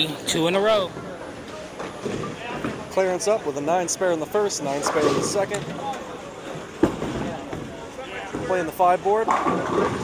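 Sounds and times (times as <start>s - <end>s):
bowling alley background noise: 0.0s - 10.0s.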